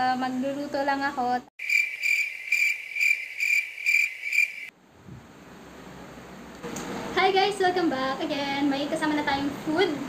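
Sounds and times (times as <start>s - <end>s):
cricket chirping: 1.6s - 4.7s.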